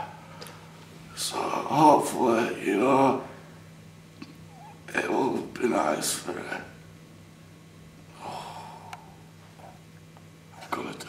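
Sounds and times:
steady low hum: 0:00.0 - 0:11.0
man breathing out: 0:08.2 - 0:09.2.

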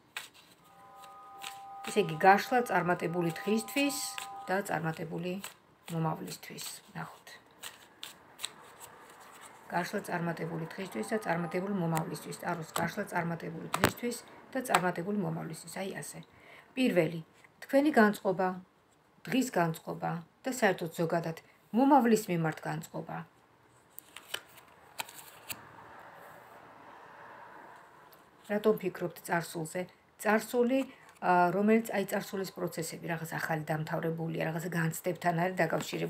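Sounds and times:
cards being shuffled: 0:00.1 - 0:01.7, 0:03.3 - 0:09.7, 0:23.9 - 0:25.6.

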